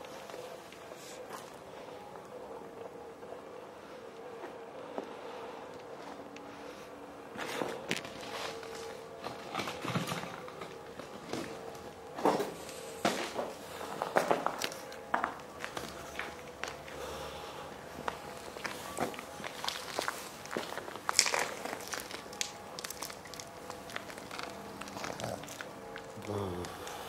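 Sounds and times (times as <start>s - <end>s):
faint steady hum: 0.0s - 27.0s
footsteps on gritty concrete: 12.3s - 17.0s, 18.0s - 26.8s.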